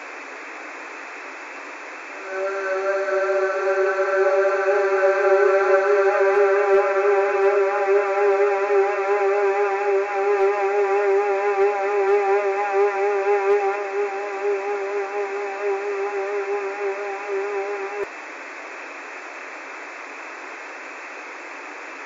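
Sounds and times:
held musical tone with vibrato: 2.2s - 18.1s.

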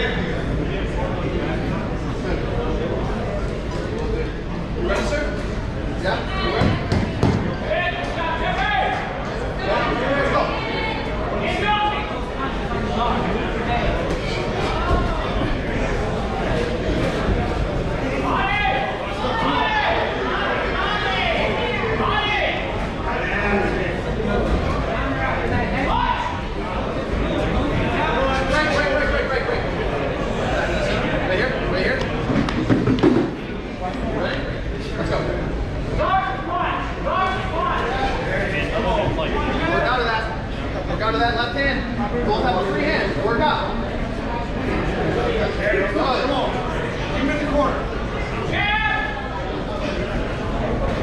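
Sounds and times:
people talking in a hall: 0.0s - 51.0s.

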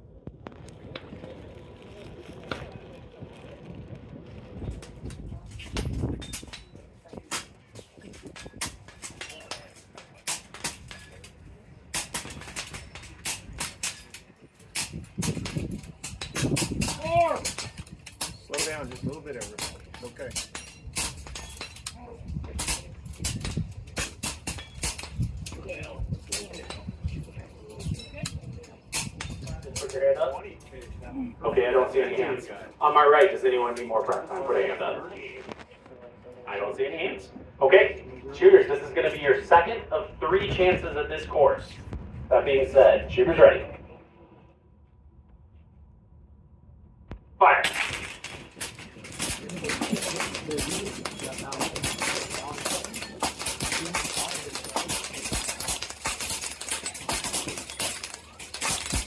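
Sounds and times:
voices talking: 25.1s - 44.4s, 47.4s - 59.0s
air rifles firing: 47.6s - 59.0s.

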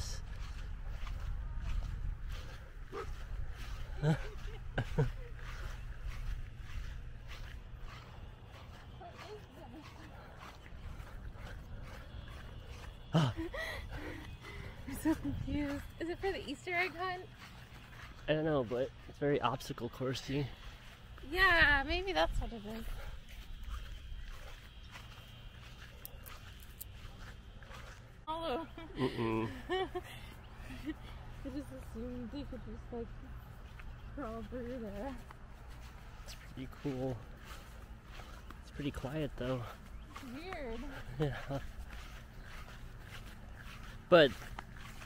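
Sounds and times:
wind rumble on microphone: 0.0s - 7.8s, 14.3s - 16.0s
footsteps on grass: 0.0s - 45.0s.

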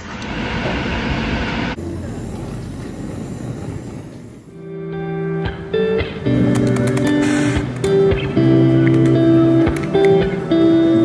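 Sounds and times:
blowtorch flame hissing: 1.7s - 4.5s, 7.2s - 7.7s.

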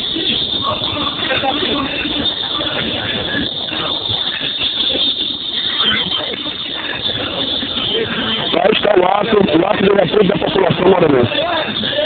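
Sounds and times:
crowd chatter: 0.0s - 12.0s
steady background noise: 0.0s - 12.0s.

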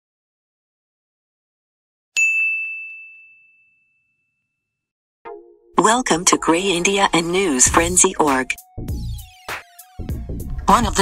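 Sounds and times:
bright ding: 2.2s - 4.2s.

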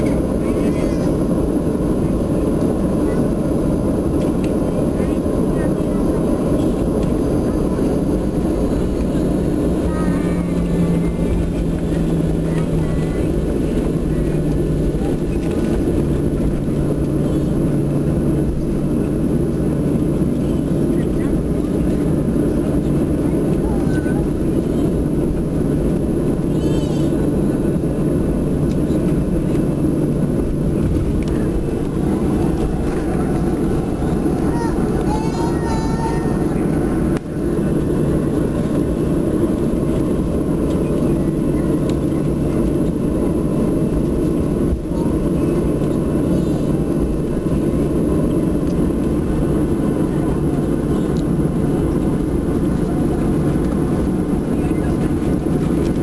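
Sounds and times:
jet airliner taxiing rumble: 0.0s - 56.0s
low engine hum: 0.0s - 56.0s.

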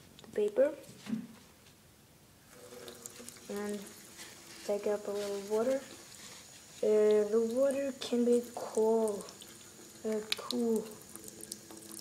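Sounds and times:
tap water running into basin: 2.5s - 12.0s.

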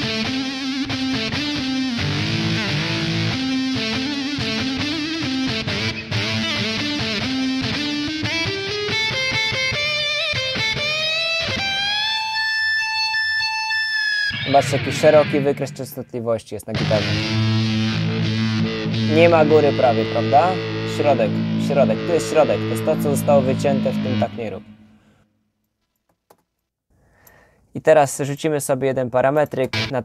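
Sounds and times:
electric guitar melodic line: 0.0s - 16.0s, 16.7s - 25.2s, 29.7s - 30.0s.

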